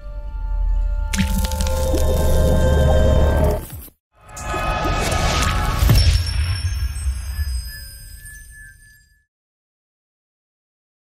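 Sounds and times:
ink splat sound effect: 1.1 - 2.0.

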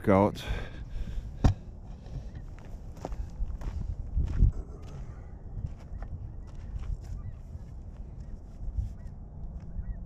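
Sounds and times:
footsteps on gravel: 2.5 - 8.3.

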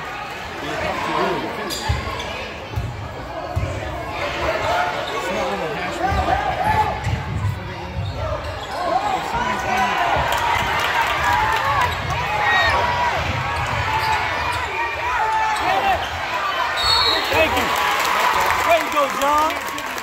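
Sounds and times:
spectators' voices: 0.0 - 20.0.

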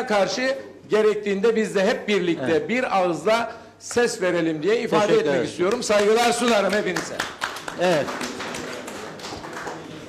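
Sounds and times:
audience clapping: 5.6 - 10.0.

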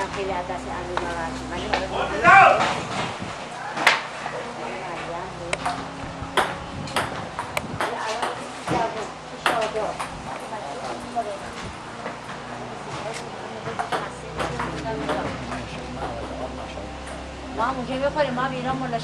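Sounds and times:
table tennis ball clicks: 5.5 - 8.8.

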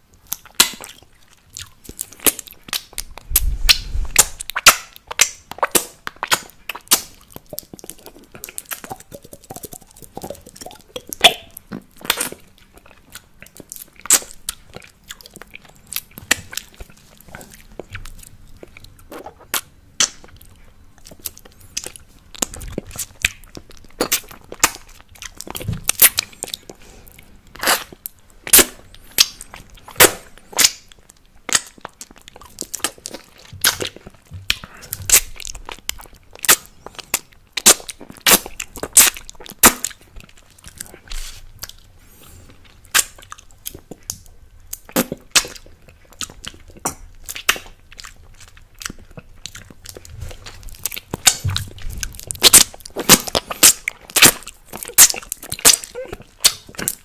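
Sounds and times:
wet mouth sounds licking candy: 0.2 - 57.0.

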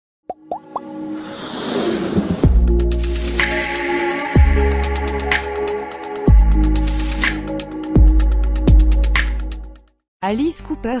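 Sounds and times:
quick pops rising in pitch: 0.3 - 1.0
electronic music: 2.4 - 9.8.

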